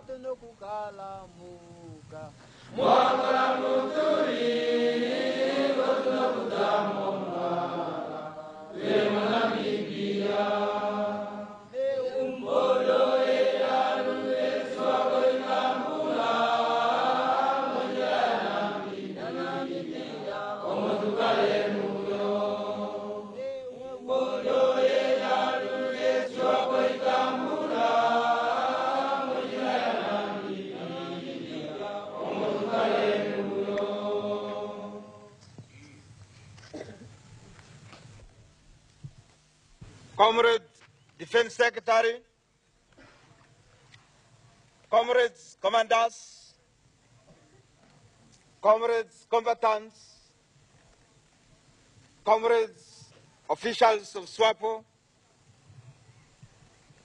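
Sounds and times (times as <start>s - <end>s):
group of voices chanting: 24.1s - 35.2s.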